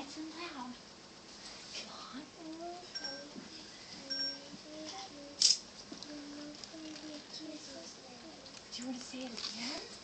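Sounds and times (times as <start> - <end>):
young children's voices: 4.1 - 8.5.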